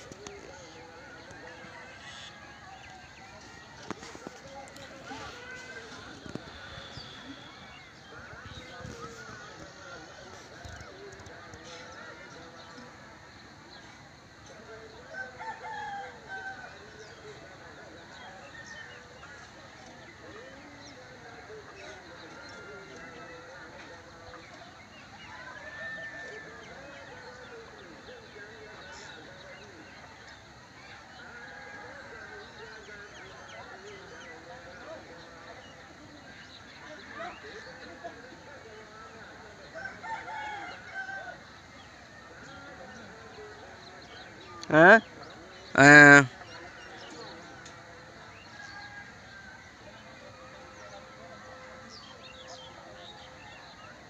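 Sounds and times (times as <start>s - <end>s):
low outdoor background noise: 0.0s - 54.0s
rooster crowing: 39.8s - 41.4s.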